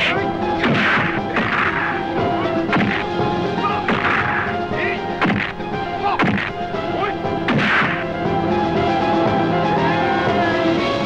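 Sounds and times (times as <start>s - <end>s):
background music with held tones: 0.0s - 11.0s
punch sound effect: 0.6s - 1.8s, 2.7s - 3.0s, 5.2s - 5.5s, 7.5s - 8.0s.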